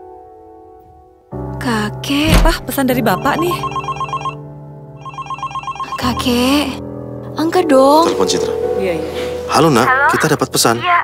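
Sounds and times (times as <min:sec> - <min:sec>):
phone ringtone beeps: 0:03.2 - 0:04.4, 0:05.0 - 0:06.4.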